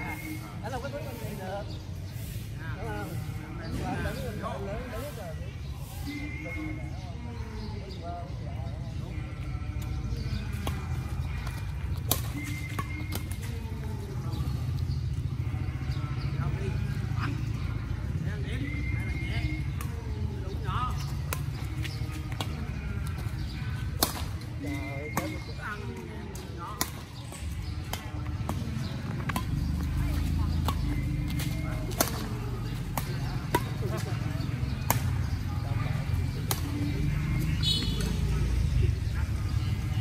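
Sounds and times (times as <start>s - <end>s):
rackets striking shuttlecock: 9.8s - 14.3s, 18.7s - 38.2s.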